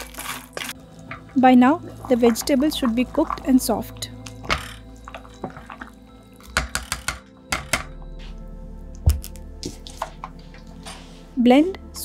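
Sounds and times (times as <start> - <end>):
liquid sloshing: 0.0 - 6.6
soft background music: 0.0 - 12.0
spoon knocking in metal pot: 4.4 - 8.0.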